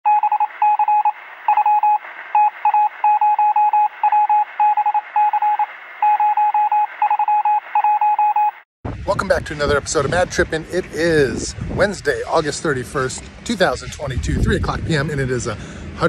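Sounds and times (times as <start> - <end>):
morse code beeping: 0.1 - 8.6.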